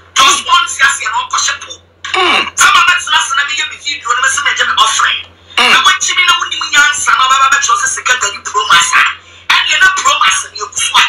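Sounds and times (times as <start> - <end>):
faint low hum: 0.0 - 11.0
person talking: 0.2 - 11.0.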